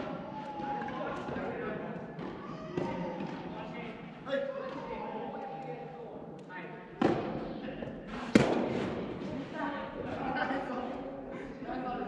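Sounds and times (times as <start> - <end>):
tennis ball hits echoing: 8.3 - 9.2.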